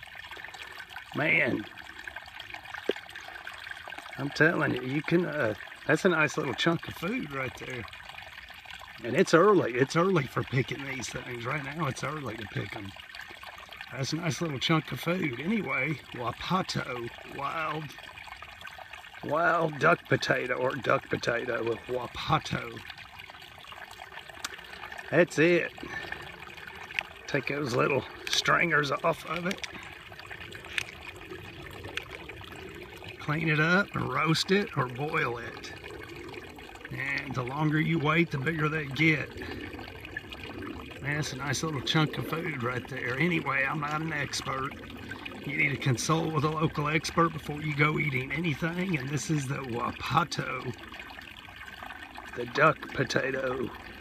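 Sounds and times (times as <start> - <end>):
creek trickling over rocks: 0.0 - 54.0.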